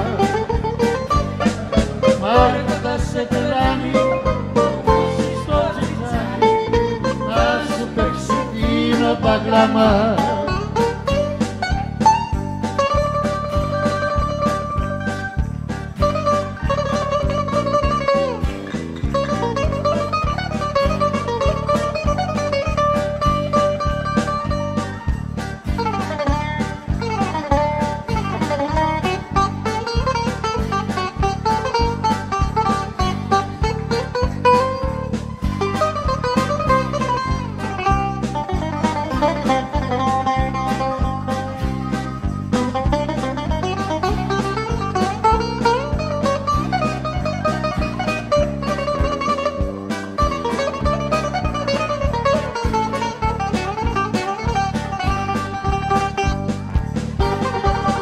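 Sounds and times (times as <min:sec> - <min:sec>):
plucked string instrumental music: 0:00.0 - 0:58.0.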